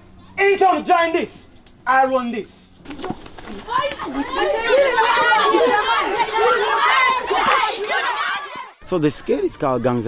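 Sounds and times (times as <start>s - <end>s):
children shouting and chattering: 2.9s - 10.0s.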